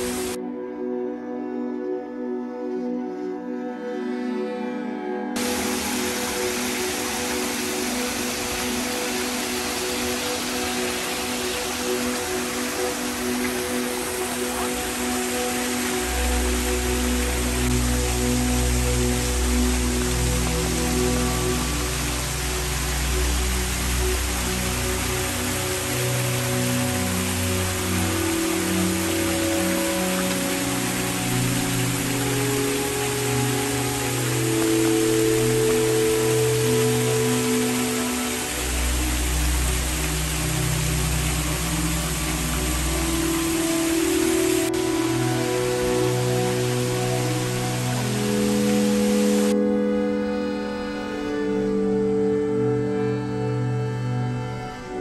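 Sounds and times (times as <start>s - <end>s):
fountain water splashing: 0.0s - 0.4s, 5.4s - 55.0s
slow ambient music: 0.0s - 55.0s.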